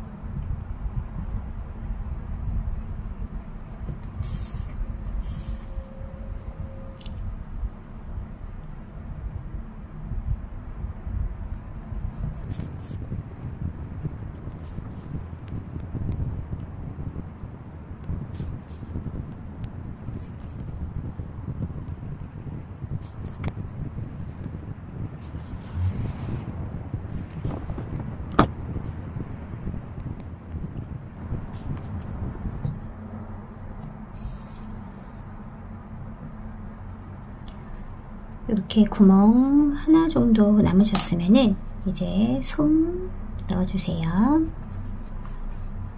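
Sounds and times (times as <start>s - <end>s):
low uneven rumble: 0.0s - 45.9s.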